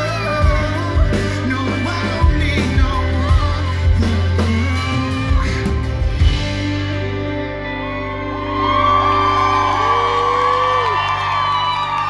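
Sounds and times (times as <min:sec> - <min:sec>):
live band sustained chord: 0:00.0 - 0:12.0
audience cheering and whooping: 0:08.0 - 0:12.0.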